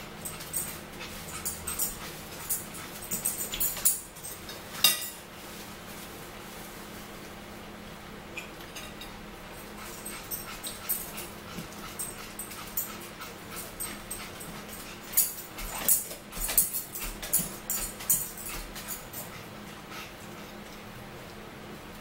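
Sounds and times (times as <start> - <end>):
eating clicks and rustles: 0.0 - 4.8, 9.6 - 21.4.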